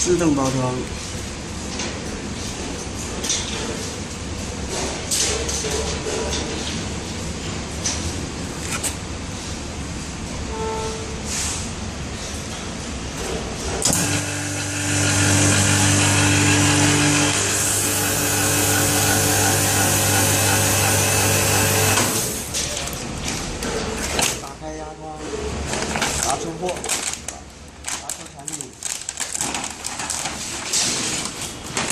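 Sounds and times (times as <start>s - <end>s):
vacuum pump humming and hissing: 13.8s - 22.6s.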